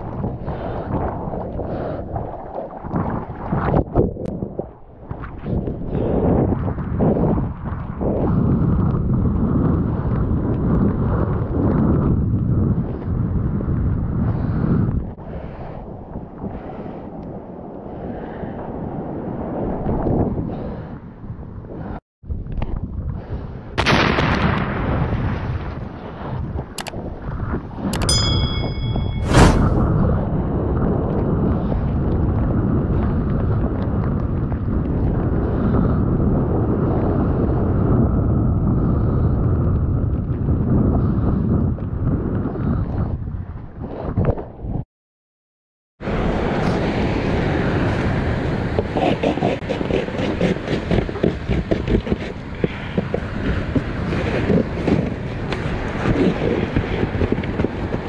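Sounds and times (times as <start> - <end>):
wind noise on microphone: 0.0 - 44.9, 46.0 - 58.0
sharp clicks: 26.8 - 27.0
short ringing chime: 28.0 - 29.8
loud splash: 29.2 - 29.9.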